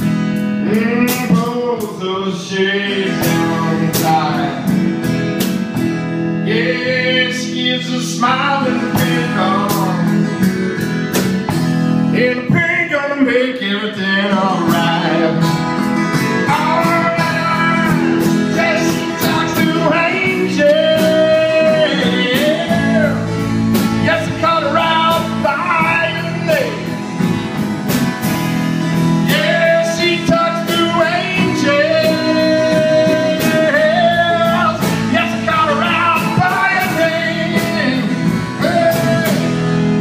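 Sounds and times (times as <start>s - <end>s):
electric guitar: 0.0s - 40.0s
man singing into a microphone: 0.4s - 5.0s, 6.3s - 10.5s, 12.0s - 27.0s, 29.0s - 40.0s
steady drum beat: 8.2s - 12.1s, 14.7s - 40.0s.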